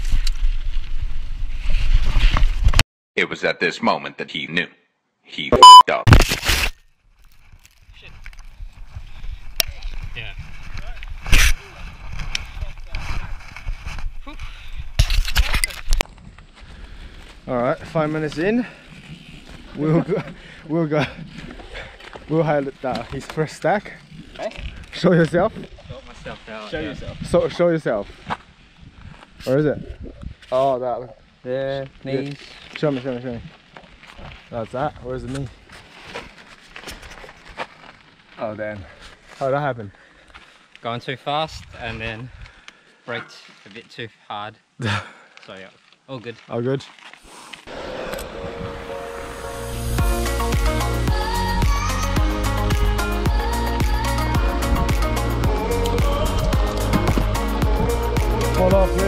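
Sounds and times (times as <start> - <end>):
camera handling rustles: 6.1 - 8.6, 14.9 - 16.0
camera handling rumble: 14.8 - 16.1.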